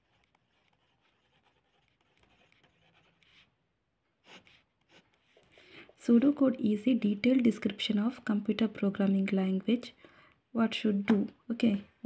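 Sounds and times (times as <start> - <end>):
pen scratching on paper: 0.0 - 3.6, 4.2 - 5.4.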